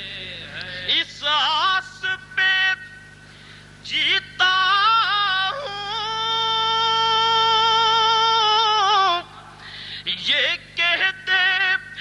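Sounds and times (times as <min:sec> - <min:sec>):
person singing unaccompanied: 0:00.0 - 0:03.0, 0:03.8 - 0:12.0.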